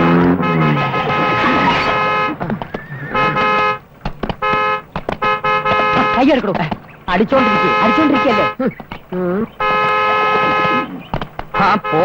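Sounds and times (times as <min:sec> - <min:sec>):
car horn honking: 0:00.0 - 0:08.6, 0:09.5 - 0:12.0.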